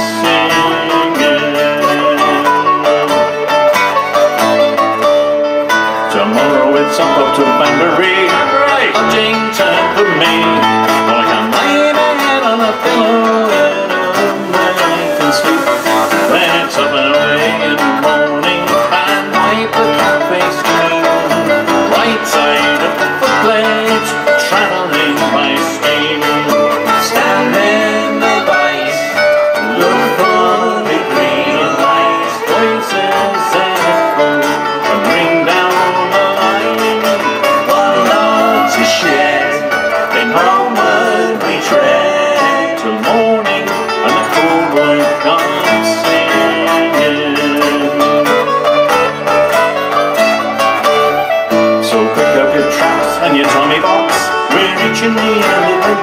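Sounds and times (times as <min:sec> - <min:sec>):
acoustic folk band playing: 0:00.0 - 0:56.0
fiddle: 0:00.0 - 0:56.0
strummed acoustic guitars: 0:00.0 - 0:56.0.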